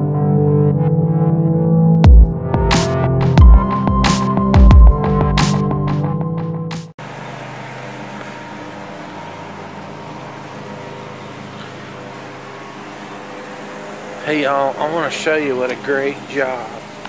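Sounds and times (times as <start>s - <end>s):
electronic music: 0.0s - 6.9s
outdoor hum and hiss: 7.0s - 17.0s.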